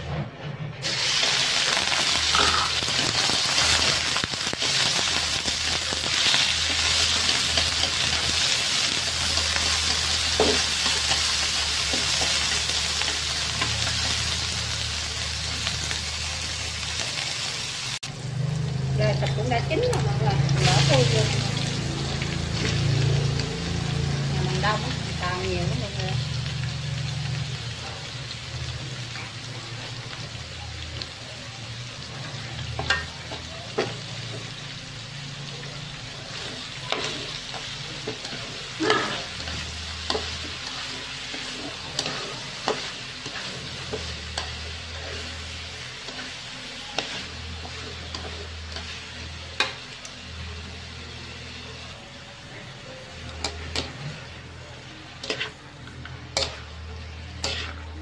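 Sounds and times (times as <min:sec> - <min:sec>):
food sizzling in a wok: 0:00.8 - 0:58.0.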